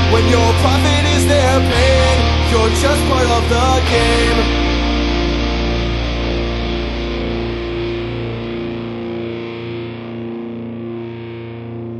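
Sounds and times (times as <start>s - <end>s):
distorted electric guitar chord ringing: 0.0s - 11.9s.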